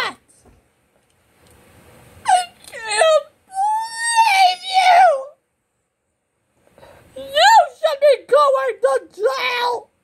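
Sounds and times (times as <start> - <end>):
high-pitched voice wailing: 2.2 - 5.4, 7.2 - 9.8.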